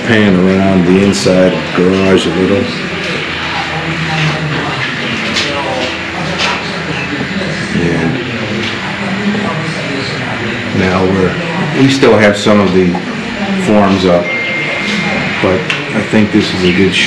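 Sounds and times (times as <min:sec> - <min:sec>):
people talking: 0:00.0 - 0:17.0
steady noise: 0:00.0 - 0:17.0.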